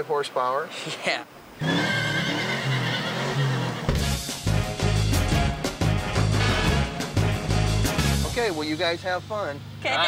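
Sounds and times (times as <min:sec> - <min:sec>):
horse whinnying: 0:01.6 - 0:04.0
music: 0:03.9 - 0:09.0.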